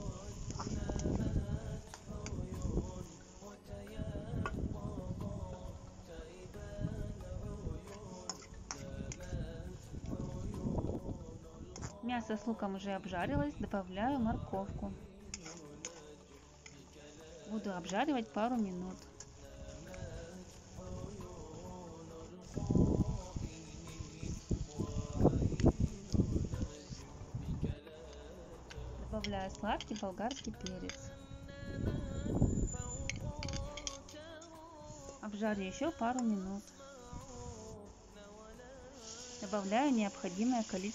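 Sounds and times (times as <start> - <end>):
background music: 0.0 - 40.9
carrots scraped and stirred: 14.6 - 27.2, 38.9 - 40.9.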